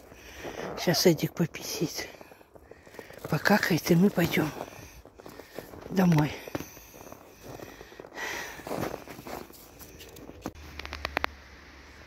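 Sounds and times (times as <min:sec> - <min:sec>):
footsteps crunching in snow: 0:00.0 - 0:11.1
sharp clicks: 0:10.0 - 0:11.4.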